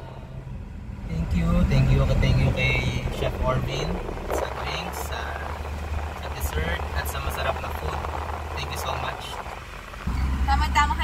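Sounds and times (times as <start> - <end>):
car cabin road rumble: 0.0 - 11.0
man talking: 1.1 - 9.4.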